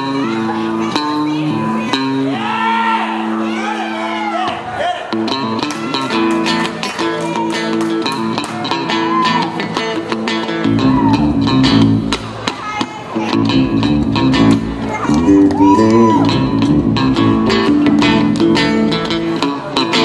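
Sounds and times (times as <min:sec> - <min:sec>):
bass guitar: 0:05.2 - 0:12.5, 0:13.2 - 0:20.0
strummed electric guitar: 0:05.2 - 0:20.0.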